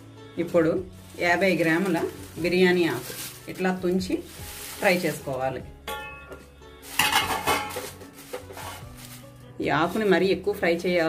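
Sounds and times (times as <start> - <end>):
spatula stirring dry leaves in pan: 0.5 - 5.6, 6.8 - 10.2.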